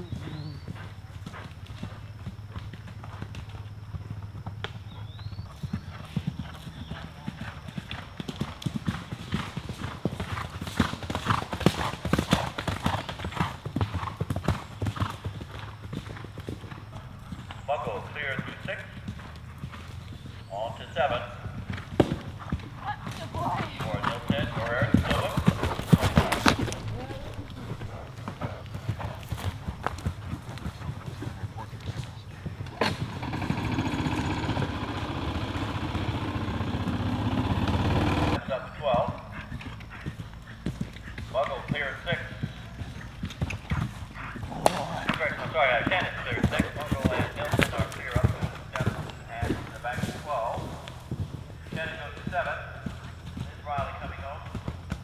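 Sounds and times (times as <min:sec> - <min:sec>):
voices: 0:00.0 - 0:00.8, 0:16.7 - 0:19.2, 0:20.4 - 0:21.8, 0:22.7 - 0:28.7, 0:31.2 - 0:40.1, 0:41.2 - 0:43.2, 0:44.1 - 0:51.0, 0:51.7 - 0:54.6
horse hoofbeats on turf: 0:00.0 - 0:33.8, 0:38.4 - 0:55.0.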